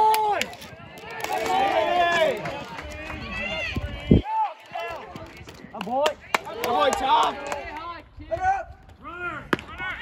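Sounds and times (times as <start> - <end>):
people yelling and cheering: 0.0 - 10.0.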